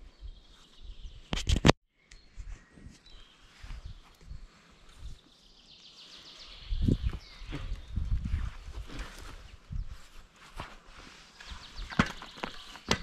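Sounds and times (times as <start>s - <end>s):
wheel and footsteps in dry grass: 3.0s - 13.0s.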